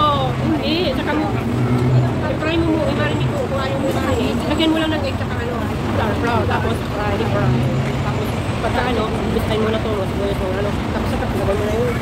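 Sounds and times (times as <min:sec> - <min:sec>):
road traffic rumble: 0:00.0 - 0:12.0
women talking: 0:00.0 - 0:12.0.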